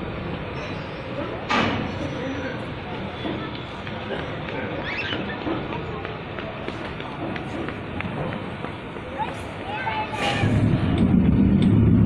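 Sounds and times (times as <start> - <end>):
people talking in background: 0.0 - 11.2
steady outdoor noise: 0.0 - 12.0.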